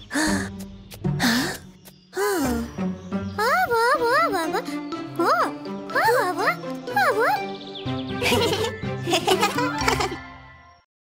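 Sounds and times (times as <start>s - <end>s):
light children's music: 0.0s - 10.9s.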